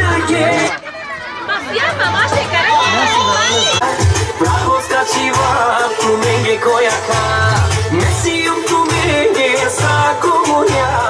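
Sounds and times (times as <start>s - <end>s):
dance music: 0.0s - 0.8s, 1.5s - 11.0s
crowd chatter: 0.0s - 11.0s.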